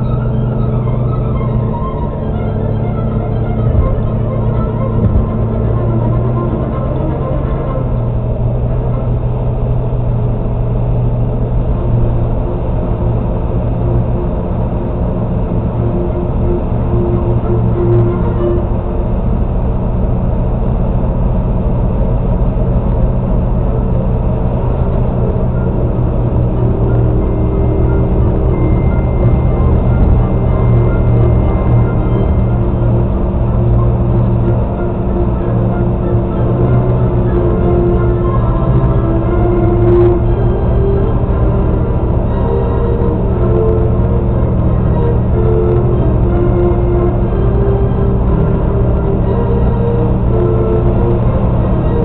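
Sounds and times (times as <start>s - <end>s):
car road and engine rumble: 0.0s - 52.0s.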